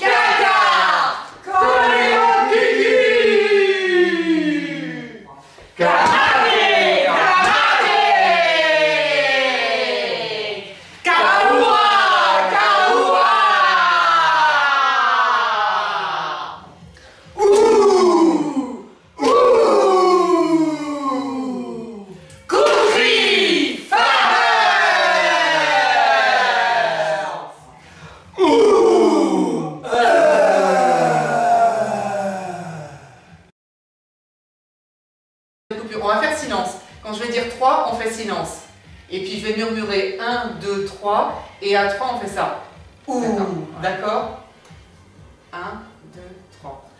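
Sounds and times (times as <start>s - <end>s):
group shouting in unison: 0.0s - 16.6s, 17.4s - 27.5s, 28.4s - 33.4s
long held chanted vocal call: 28.4s - 33.5s.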